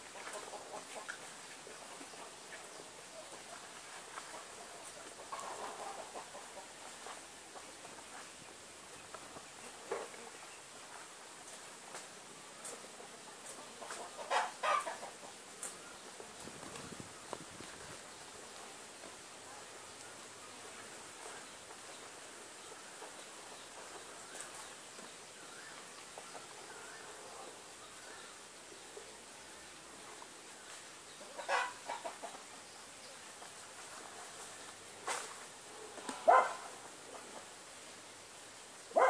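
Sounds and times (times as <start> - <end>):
chicken clucking: 0.1 - 2.3, 12.6 - 15.4, 31.2 - 32.8.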